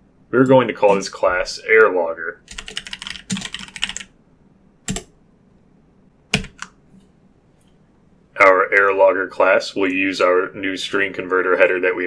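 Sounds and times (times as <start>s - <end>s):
computer keyboard keystrokes: 2.5s - 4.1s, 4.9s - 5.1s, 6.3s - 6.8s.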